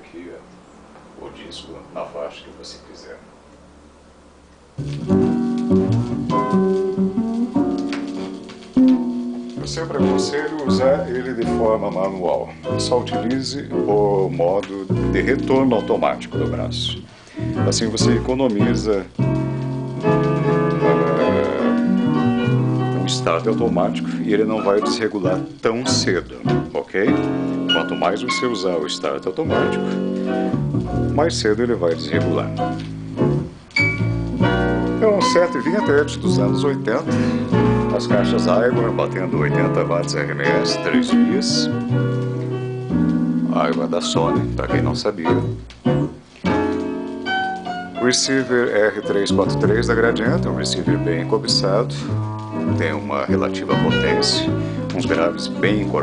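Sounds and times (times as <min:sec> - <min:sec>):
vinyl record music: 0:04.5 - 0:56.0
recorded music over loudspeakers: 0:20.0 - 0:25.4.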